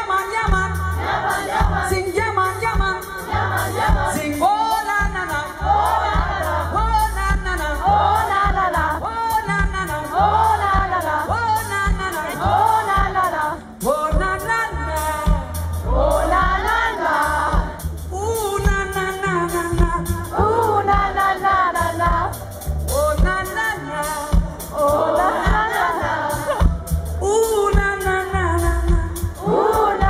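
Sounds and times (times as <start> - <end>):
audience singing along: 0.0 - 18.1, 20.2 - 27.3, 29.1 - 30.0
live pop band playing: 0.0 - 30.0.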